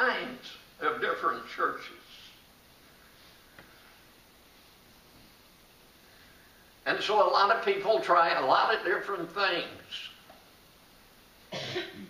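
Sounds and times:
person coughing: 11.5 - 12.0.

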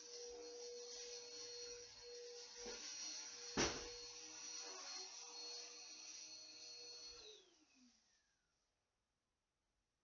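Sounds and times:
small motor humming: 0.0 - 8.5.

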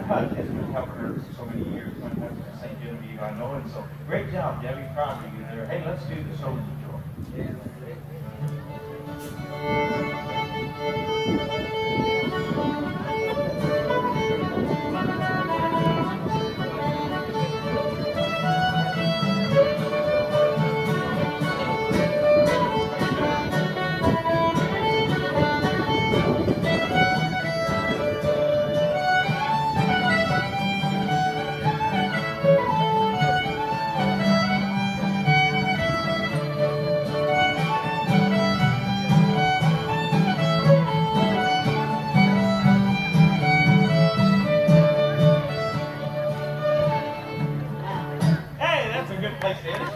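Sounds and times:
fiddle playing lively tune: 0.0 - 49.9
strummed acoustic guitar: 8.0 - 49.4.

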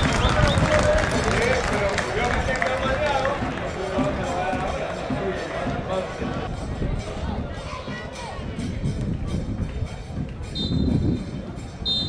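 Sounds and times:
open-air stadium noise: 0.0 - 12.0.

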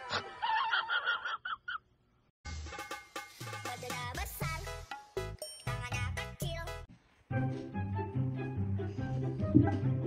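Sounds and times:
music: 2.5 - 10.0.

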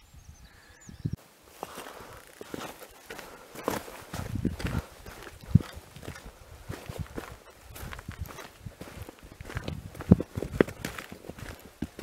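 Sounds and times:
footsteps on stony trail: 1.5 - 12.0.

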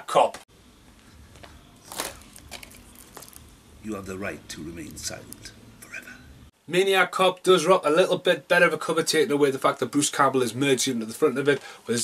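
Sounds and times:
low room hum: 0.5 - 12.0.

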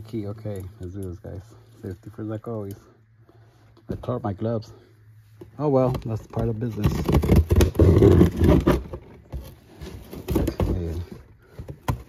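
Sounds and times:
cardboard crackles: 6.0 - 12.0
cardboard tearing: 6.7 - 11.0.

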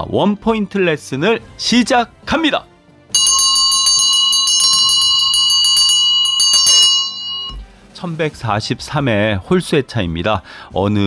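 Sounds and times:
bell ringing rapidly: 3.2 - 7.7.

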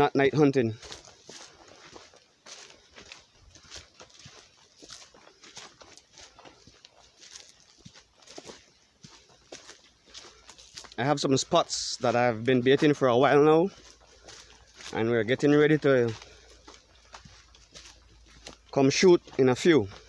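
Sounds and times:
footsteps crunching through dry leaves: 0.0 - 20.0.

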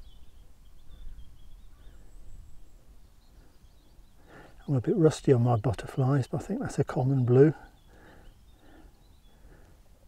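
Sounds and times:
songbird warbling: 0.0 - 9.7.

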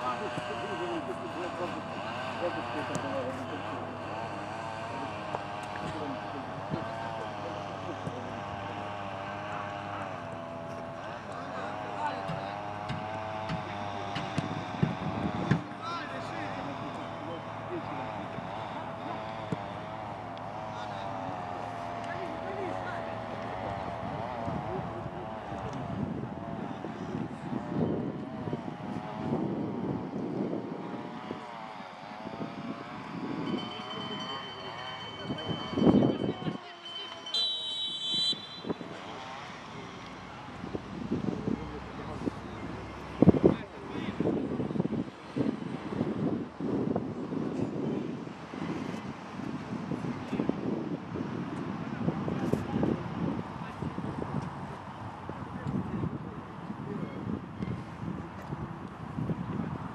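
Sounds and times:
faint players shouting: 0.0 - 29.2, 30.8 - 45.8
referee's whistle blast: 36.9 - 39.1.

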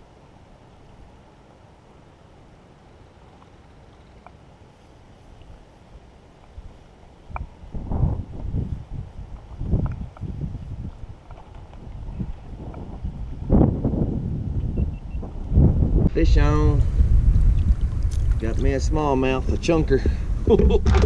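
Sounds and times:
wind buffeting microphone: 6.6 - 21.0.

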